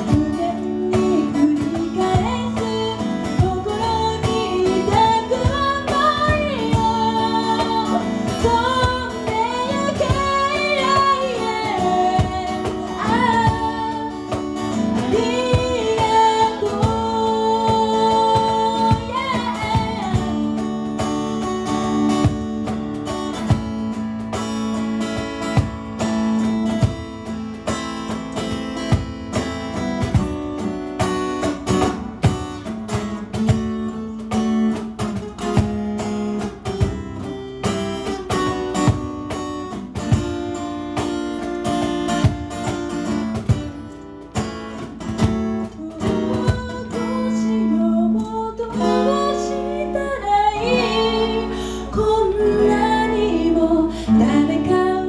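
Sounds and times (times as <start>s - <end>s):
woman singing: 0.0s - 21.3s, 44.8s - 55.0s
acoustic guitar strumming: 0.0s - 55.0s
cajon beats: 0.0s - 55.0s.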